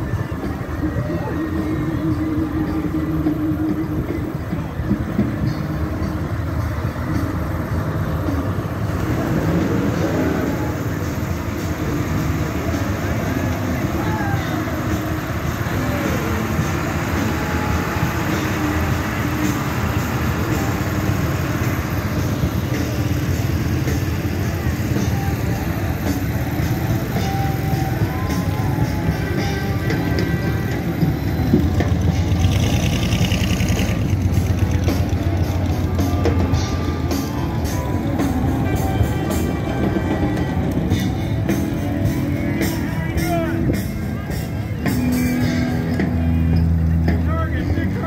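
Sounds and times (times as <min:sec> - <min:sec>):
crowd voices: 0:00.0 - 0:48.0
diesel engine rolling by: 0:00.0 - 0:48.0
music with drum beat: 0:00.0 - 0:48.0
quad engine: 0:00.0 - 0:48.0.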